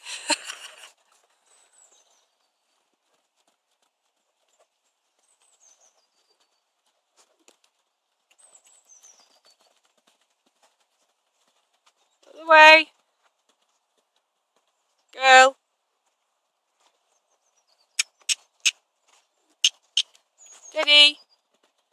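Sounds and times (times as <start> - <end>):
person calling out: 12.4 - 12.8, 15.2 - 15.5, 20.8 - 21.2.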